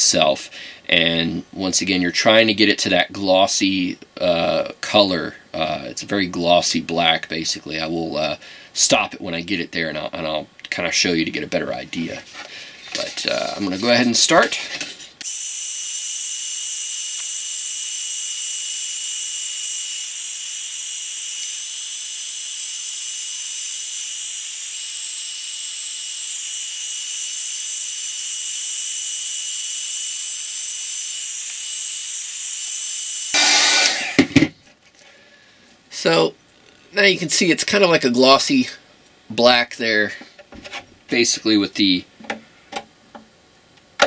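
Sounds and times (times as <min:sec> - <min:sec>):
heat gun hissing: 0:15.2 - 0:34.4.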